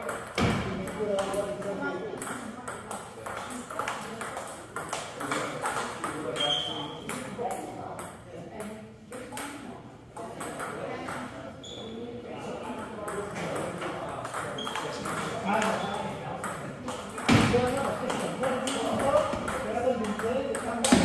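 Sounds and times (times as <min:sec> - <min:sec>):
background chatter: 0:00.0 - 0:21.0.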